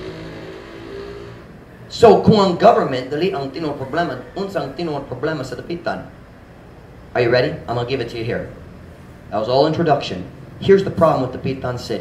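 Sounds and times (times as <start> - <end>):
vehicle engine hum: 0.0 - 1.9.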